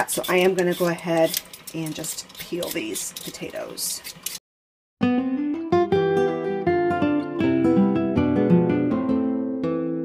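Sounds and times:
plucked acoustic guitar music: 0:05.0 - 0:10.0.

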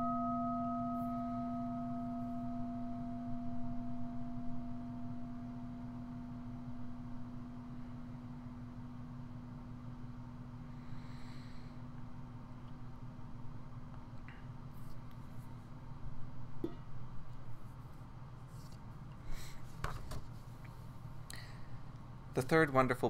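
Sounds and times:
meditation bell ringing: 0:00.0 - 0:08.4.

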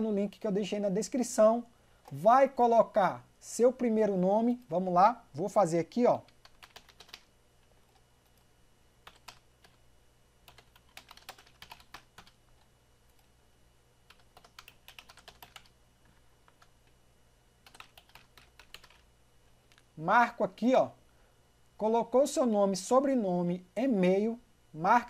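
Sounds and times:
low steady hum: 0:00.0 - 0:25.0
typing on computer keyboard: 0:06.2 - 0:08.4, 0:09.0 - 0:09.8, 0:10.5 - 0:13.3, 0:14.1 - 0:15.7, 0:17.6 - 0:19.1.

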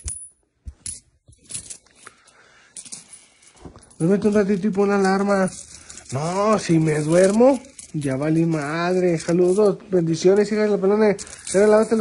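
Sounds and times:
coins clicking: 0:00.0 - 0:12.0.

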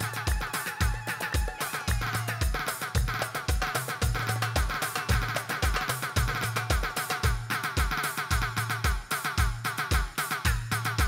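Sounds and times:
buzzy reedy lead melody: 0:00.0 - 0:11.0
steady kick drum: 0:00.0 - 0:11.0.

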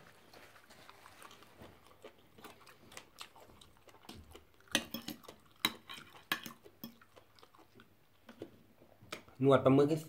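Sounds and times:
soft chewing: 0:00.0 - 0:09.4
cutlery clicking and scraping on plate: 0:04.7 - 0:07.0.

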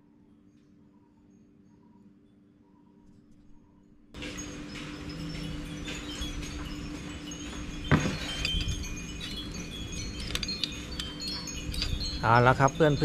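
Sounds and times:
wind chimes tinkling: 0:04.2 - 0:13.0.

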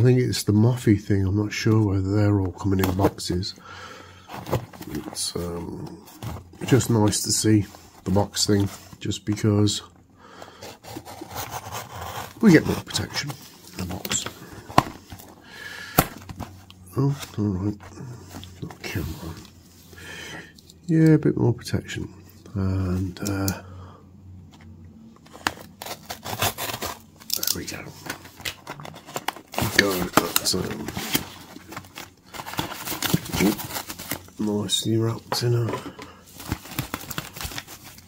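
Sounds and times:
cardboard box rubbing scrape: 0:10.6 - 0:13.4, 0:25.4 - 0:27.0
foam packing wrap crinkling: 0:25.7 - 0:35.6, 0:36.3 - 0:38.0.

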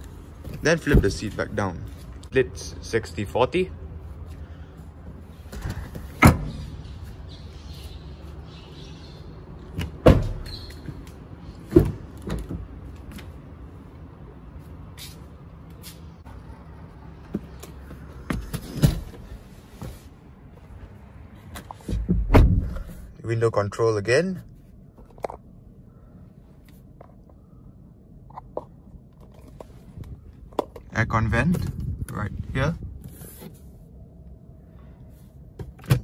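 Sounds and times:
car seat and doors thumping: 0:09.8 - 0:10.5, 0:21.8 - 0:23.0.

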